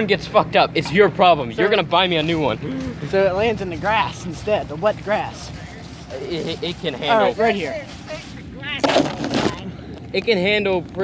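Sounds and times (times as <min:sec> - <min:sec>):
loud rough rustling burst: 0:02.9 - 0:09.6.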